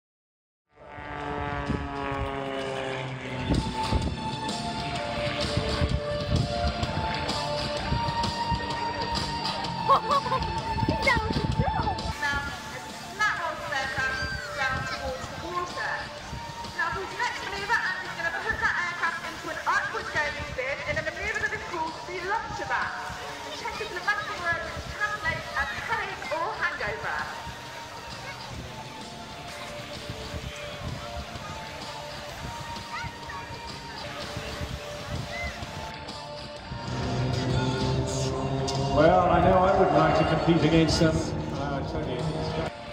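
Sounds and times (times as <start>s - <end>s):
jet aircraft flying past: 0.7s - 10.8s, 36.6s - 42.6s
overlapping chatter: 1.0s - 42.9s.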